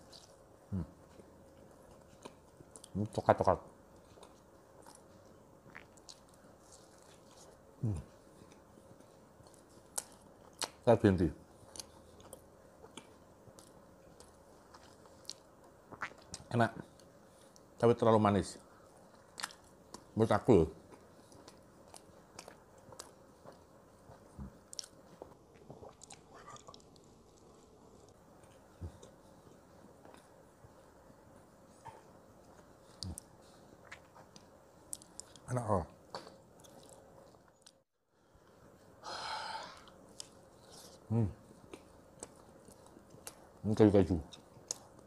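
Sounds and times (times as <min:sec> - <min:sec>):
mouth clicks chewing bread: 0:00.0 - 0:10.9, 0:19.0 - 0:20.2, 0:31.8 - 0:35.5, 0:36.1 - 0:37.8
man chewing and eating: 0:00.0 - 0:17.8, 0:18.6 - 0:20.2, 0:20.8 - 0:39.0, 0:39.8 - 0:43.6, 0:44.2 - 0:45.0.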